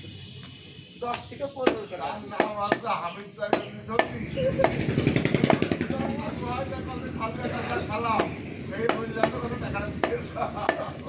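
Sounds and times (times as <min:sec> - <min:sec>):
meat cleaver chopping wood: 0:01.1 - 0:02.9, 0:03.5 - 0:05.8, 0:08.2 - 0:11.0
engine running close by: 0:04.1 - 0:08.7.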